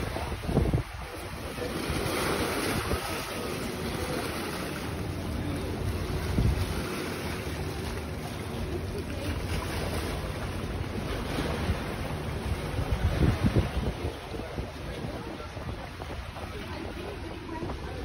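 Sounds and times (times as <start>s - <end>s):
sea water washing over rocks: 0.0s - 18.0s
wind buffeting microphone: 0.0s - 18.0s.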